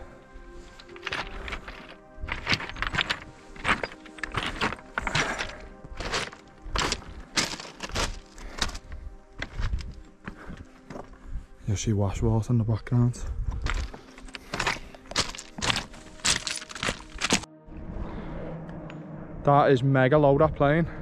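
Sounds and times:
quiet background music: 0:00.0 - 0:21.0
boots crunching on scree: 0:00.7 - 0:11.2, 0:13.5 - 0:17.5.

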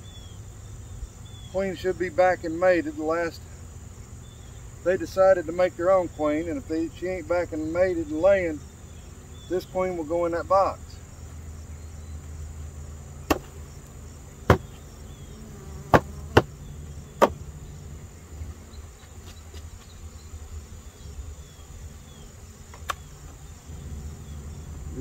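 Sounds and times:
bees buzzing: 0:00.0 - 0:25.0
hive frames knocking on wood: 0:13.2 - 0:15.0, 0:15.6 - 0:17.5.

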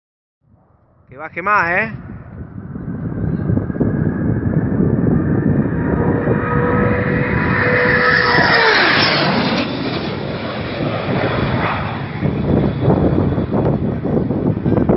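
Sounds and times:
wind on microphone: 0:00.4 - 0:14.9
jet engine roar passing: 0:00.5 - 0:14.9.

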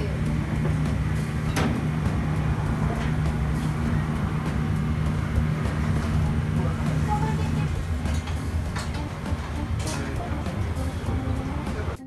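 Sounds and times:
kitchen equipment low hum: 0:00.0 - 0:12.0.

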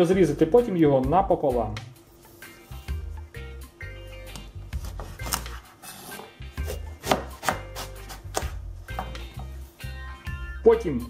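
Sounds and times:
background music: 0:00.0 - 0:11.0
knife cutting eggplant: 0:04.2 - 0:09.6
knife knocking on cutting board: 0:06.2 - 0:07.7, 0:08.3 - 0:09.3.

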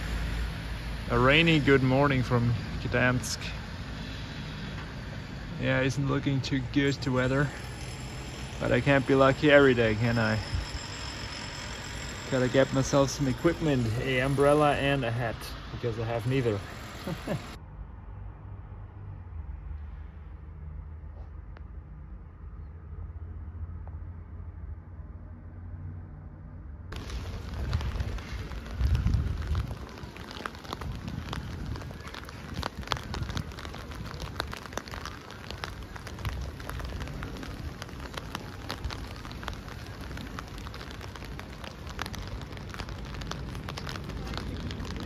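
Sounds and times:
rain on wet street: 0:00.0 - 0:17.6, 0:26.9 - 0:45.0
muffled city traffic rumble: 0:00.0 - 0:45.0
wind gusts on microphone: 0:26.9 - 0:45.0.

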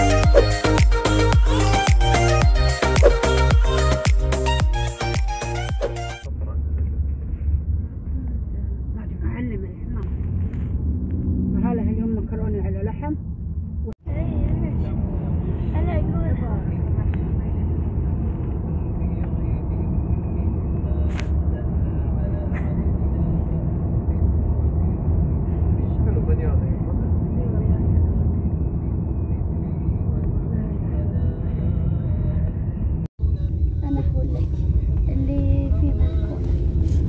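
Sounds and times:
car engine and tyres rumbling: 0:00.0 - 0:37.0.

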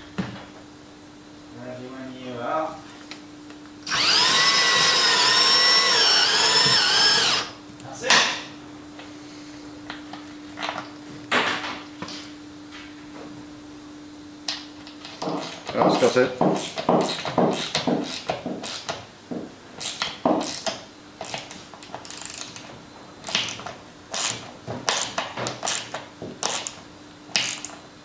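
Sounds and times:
cordless drill driving a screw: 0:03.8 - 0:07.5, 0:16.6 - 0:18.9, 0:19.8 - 0:22.6.

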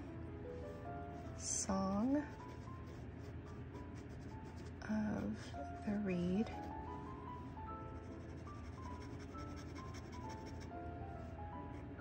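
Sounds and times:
soft instrumental music: 0:00.0 - 0:12.0
pen nib scratching paper: 0:01.2 - 0:06.7, 0:07.9 - 0:10.7.

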